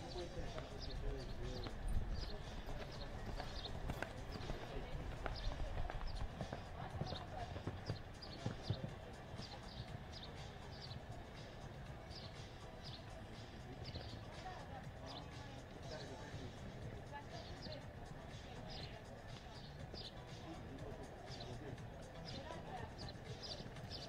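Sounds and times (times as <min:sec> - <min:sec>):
horse hoofbeats cantering: 0:00.5 - 0:10.1.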